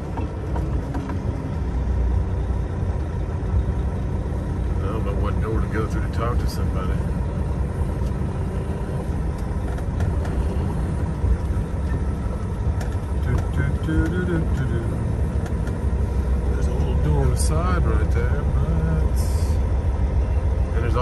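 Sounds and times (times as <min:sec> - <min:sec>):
truck diesel engine rumble: 0:00.0 - 0:21.0.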